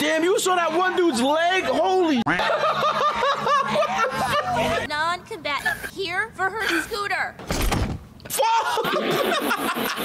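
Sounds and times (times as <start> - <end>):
man laughing hard: 2.3 - 4.9, 8.4 - 10.0.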